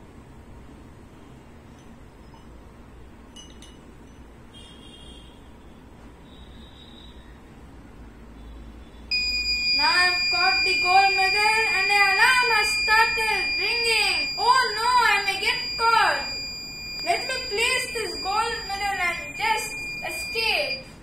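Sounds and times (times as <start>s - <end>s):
alarm buzzer high-pitched tone: 9.1s - 21.0s.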